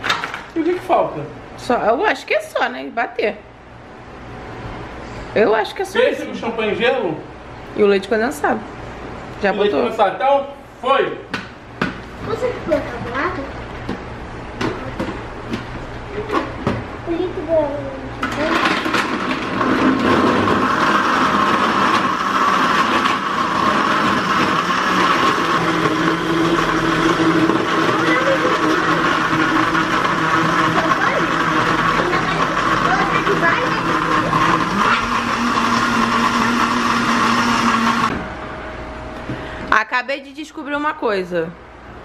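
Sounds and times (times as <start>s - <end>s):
electric blender running: 18.2s - 38.1s.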